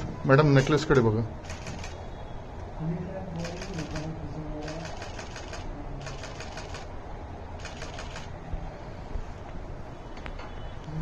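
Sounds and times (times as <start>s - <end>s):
camera shutters clicking in bursts: 0.5s - 2.1s, 3.4s - 6.9s, 7.6s - 8.3s
murmur of voices: 2.7s - 6.9s.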